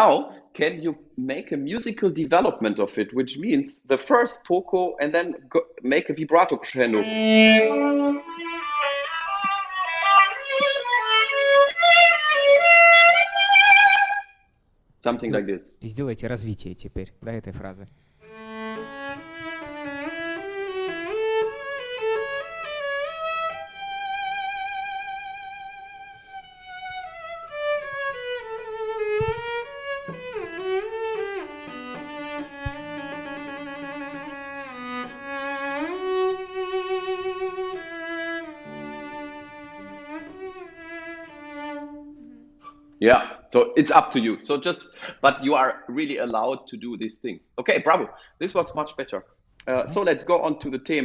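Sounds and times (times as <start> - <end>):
bowed cello with vibrato: 6.8 - 14.3, 18.2 - 43.0.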